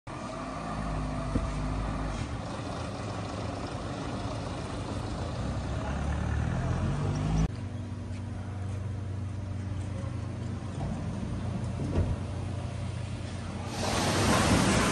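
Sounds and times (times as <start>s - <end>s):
vehicle engine rumble: 0.1s - 14.9s.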